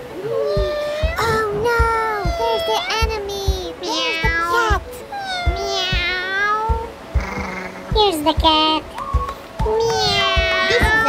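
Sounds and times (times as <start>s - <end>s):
background music with thumping beat: 0.0s - 11.0s
cat meowing: 0.2s - 3.0s, 3.8s - 7.9s, 9.8s - 11.0s.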